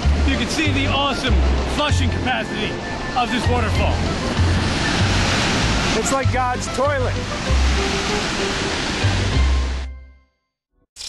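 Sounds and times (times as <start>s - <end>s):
waterfall roaring: 0.0s - 9.8s
wind buffeting microphone: 2.7s - 9.8s.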